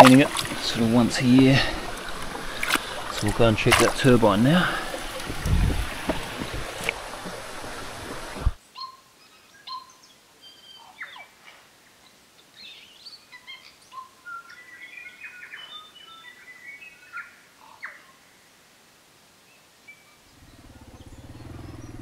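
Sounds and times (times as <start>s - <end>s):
birds chirping and whistling: 20.4s - 22.0s.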